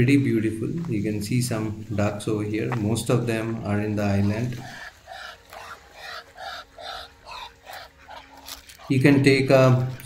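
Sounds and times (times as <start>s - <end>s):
ducks quacking: 3.8s - 10.0s.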